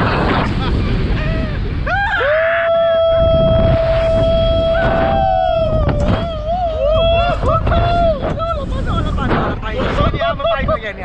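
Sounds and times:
wind rushing over microphone: 0.0s - 11.0s
person screaming: 1.9s - 8.5s.

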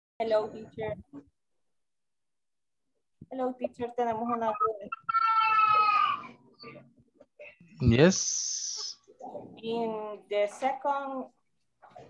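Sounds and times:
high-pitched drawn-out cry: 4.5s - 6.4s.

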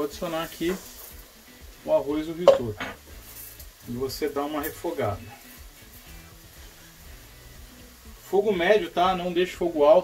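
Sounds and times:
quiet background music: 0.0s - 10.0s
rice sizzling in a pan: 0.0s - 10.0s.

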